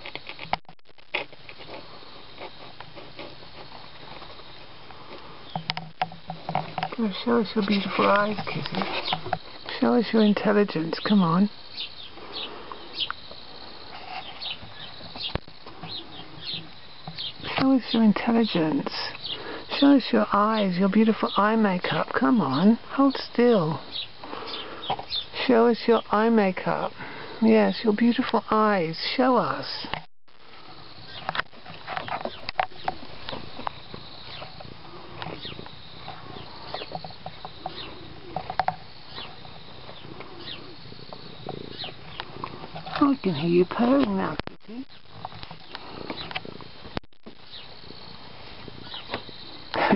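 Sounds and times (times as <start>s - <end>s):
bird chirping: 6.9s - 26.8s, 31.0s - 34.6s, 35.3s - 46.4s, 47.4s - 47.8s, 48.8s - 49.9s
cat purring: 34.0s - 38.5s, 39.1s - 43.0s.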